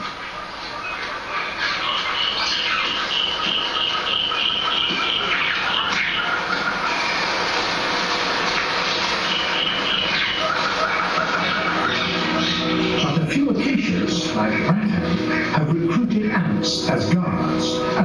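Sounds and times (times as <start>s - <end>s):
high repeated chirping calls: 0.1s - 7.2s, 8.9s - 16.2s.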